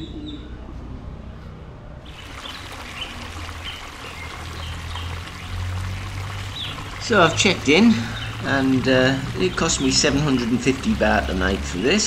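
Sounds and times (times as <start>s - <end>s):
small birds chirping: 2.0s - 10.8s.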